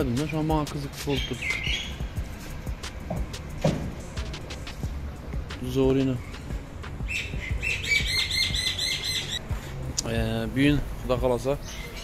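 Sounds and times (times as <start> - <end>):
small bird chirping: 1.1 - 2.2, 6.2 - 9.5.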